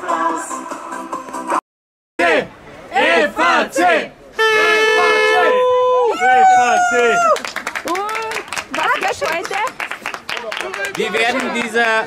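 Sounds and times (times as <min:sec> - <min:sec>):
young voices shouting a cheer: 0:05.4 - 0:07.4.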